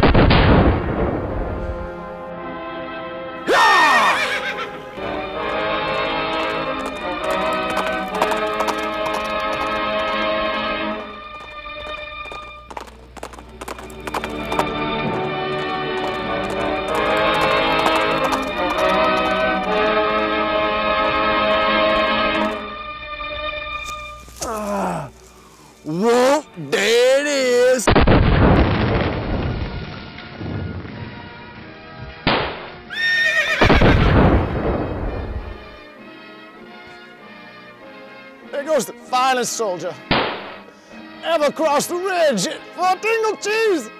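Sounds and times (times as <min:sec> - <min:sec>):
background music: 0:00.1 - 0:28.0, 0:28.8 - 0:43.9
man yelling: 0:03.4 - 0:04.4, 0:24.4 - 0:25.2, 0:25.8 - 0:27.9
horse whinnying: 0:03.4 - 0:05.2, 0:32.9 - 0:34.2
horse galloping hoofbeats: 0:03.5 - 0:22.6.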